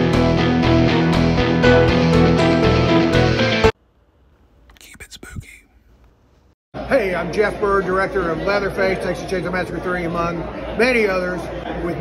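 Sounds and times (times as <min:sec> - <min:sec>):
faint whispered voice: 0:04.7 - 0:05.7.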